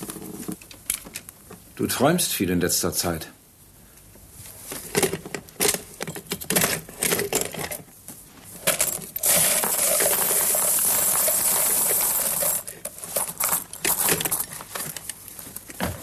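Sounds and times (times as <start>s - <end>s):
coins clinking into wooden tray: 8.7s - 14.6s.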